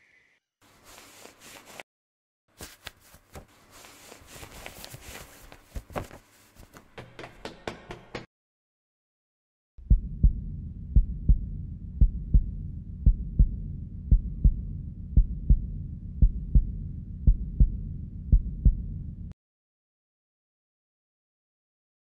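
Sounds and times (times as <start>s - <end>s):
low rumble: 9.8s - 19.3s
heartbeat thumps: 9.8s - 19.4s.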